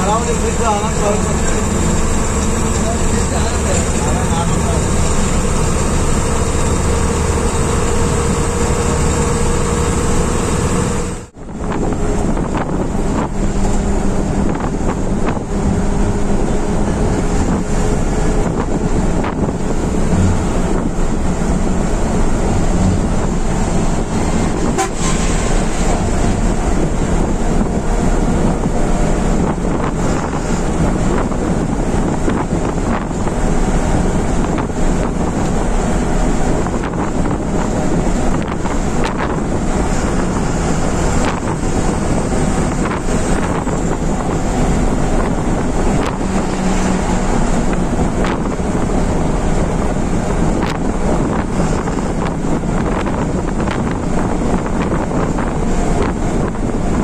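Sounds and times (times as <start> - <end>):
bus engine running: 0.0 - 57.0
road and wind noise: 0.0 - 57.0.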